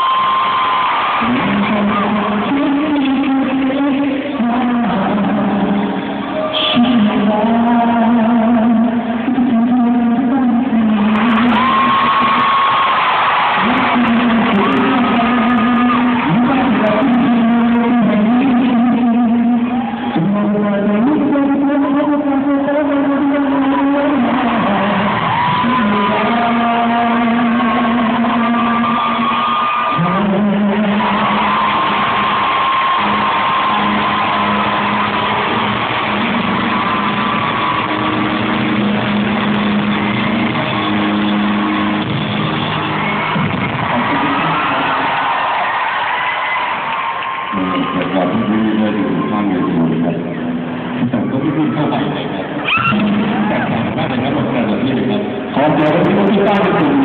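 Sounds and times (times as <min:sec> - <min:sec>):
live band playing: 0:00.0 - 0:57.0
man singing long notes: 0:01.2 - 0:12.6, 0:13.6 - 0:32.4.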